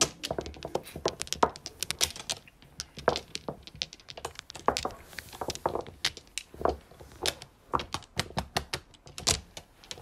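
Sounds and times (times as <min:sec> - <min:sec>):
mahjong tiles clacking: 0:00.0 - 0:10.0.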